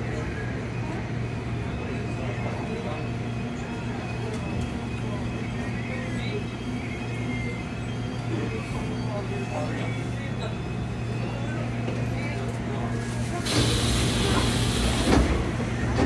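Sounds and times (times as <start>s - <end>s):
subway train car hum and rumble: 0.0s - 16.0s.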